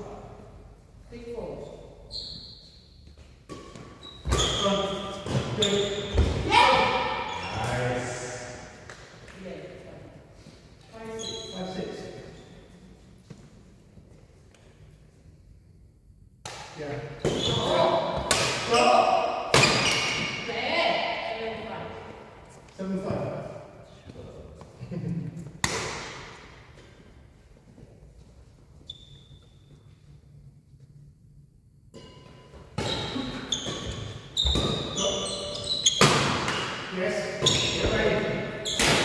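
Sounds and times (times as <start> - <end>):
racket hitting shuttlecock: 16.4 - 20.4, 25.6 - 26.4, 35.9 - 37.9, 38.7 - 39.0.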